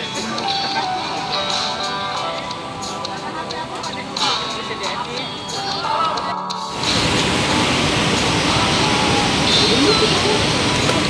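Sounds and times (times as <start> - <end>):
loud steady rushing noise: 6.7 - 11.0.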